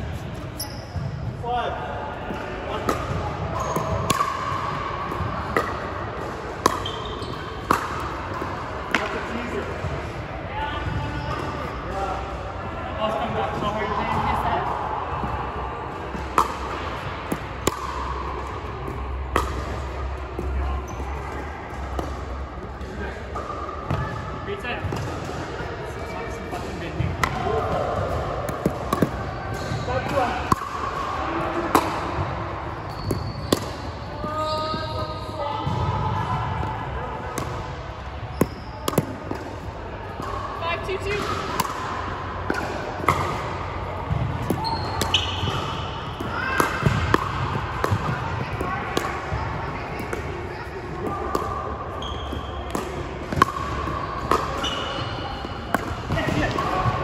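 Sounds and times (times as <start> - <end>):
sneakers squeaking on floor: 0.4 - 1.4, 3.5 - 4.3, 6.6 - 7.8, 28.5 - 30.3, 32.0 - 35.9, 38.2 - 39.4, 44.1 - 48.7, 51.9 - 57.0
ball bouncing on hardwood court: 44.0 - 50.2.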